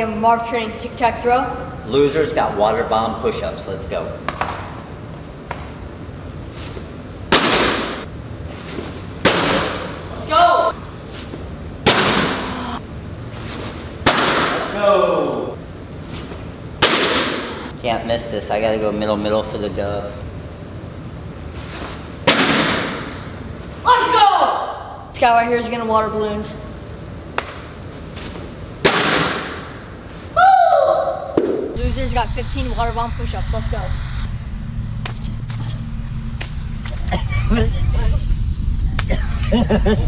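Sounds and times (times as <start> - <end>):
baseball hitting target crack: 7.3 - 8.1, 9.2 - 10.0, 11.8 - 12.5, 14.0 - 14.8, 16.8 - 17.7, 22.2 - 23.2, 28.8 - 29.8, 31.3 - 31.8.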